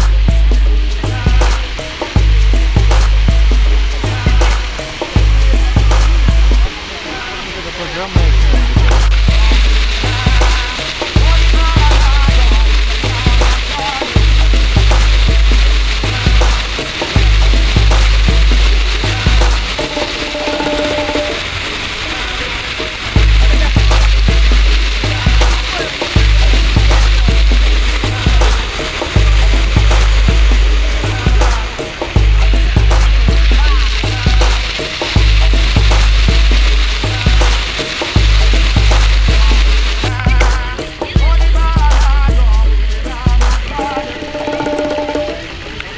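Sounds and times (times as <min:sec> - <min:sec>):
music with heavy bass line: 0:00.0 - 0:45.6
fountain water splashing: 0:00.0 - 0:45.9.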